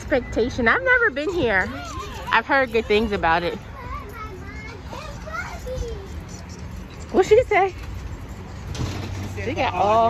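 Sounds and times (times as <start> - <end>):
young child's voice gliding: 3.6 - 6.9.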